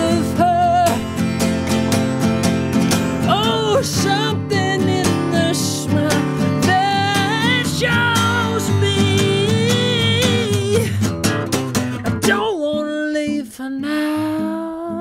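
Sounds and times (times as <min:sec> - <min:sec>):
man singing with vibrato: 0:00.0 - 0:01.2, 0:03.2 - 0:11.1, 0:12.2 - 0:15.0
acoustic guitar strumming: 0:00.0 - 0:15.0.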